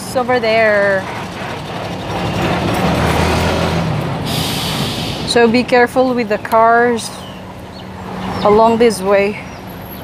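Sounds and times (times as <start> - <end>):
truck engine rumble: 0.0 - 10.0.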